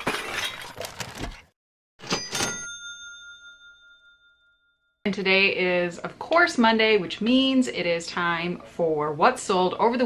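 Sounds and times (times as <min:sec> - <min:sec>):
metallic bell-like ding: 0:02.0 - 0:04.9.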